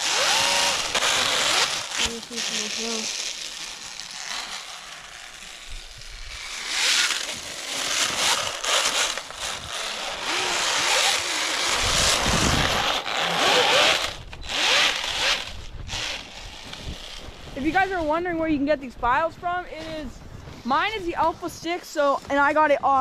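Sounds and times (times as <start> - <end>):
toy snowmobile scraping across snow: 0.0 - 18.1.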